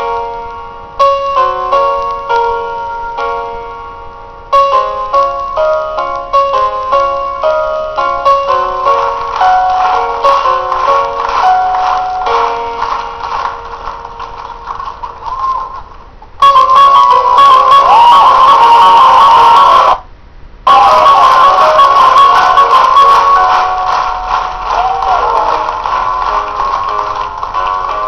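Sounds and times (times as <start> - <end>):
stage backing music: 4.6 - 15.8, 20.7 - 28.0.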